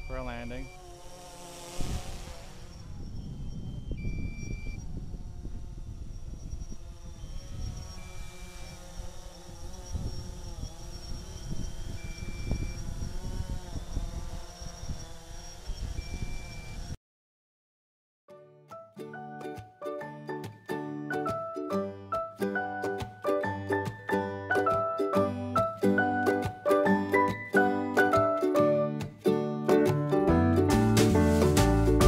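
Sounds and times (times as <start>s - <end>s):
drone propellers humming: 0.0s - 17.0s
wind rumbling on microphone: 1.8s - 17.0s
short beep: 3.5s - 4.8s.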